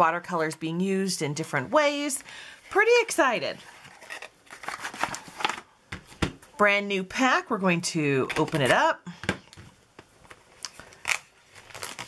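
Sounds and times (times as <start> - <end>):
plastic shrink-wrap crinkling: 3.8 - 5.7, 10.2 - 12.0.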